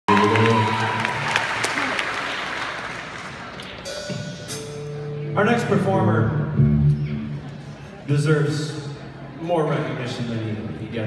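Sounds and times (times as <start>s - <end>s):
audience applauding: 0.0s - 3.8s
held musical chord: 3.9s - 7.3s.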